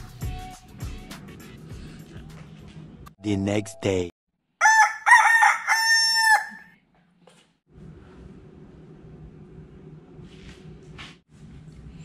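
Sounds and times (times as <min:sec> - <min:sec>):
rooster crowing: 0:04.6 - 0:06.8.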